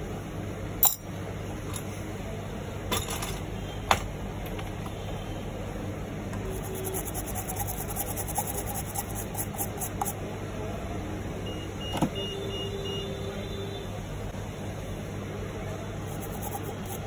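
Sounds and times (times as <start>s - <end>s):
low workbench hum: 0.0s - 11.2s, 14.8s - 17.0s
brush scrubbing circuit board: 6.4s - 10.2s, 16.0s - 17.0s.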